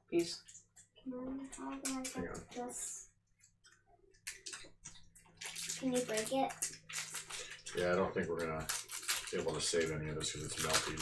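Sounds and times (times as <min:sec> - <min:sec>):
snack wrapper crackling: 0:04.2 - 0:11.0.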